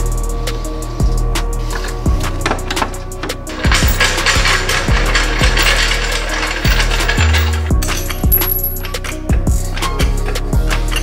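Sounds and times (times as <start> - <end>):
music with heavy bass beat: 0.0 - 11.0.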